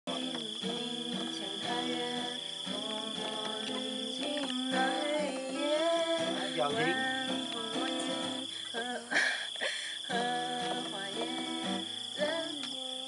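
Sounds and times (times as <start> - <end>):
acoustic guitar strumming: 0.1 - 9.1, 10.1 - 13.0
woman singing: 0.1 - 13.0.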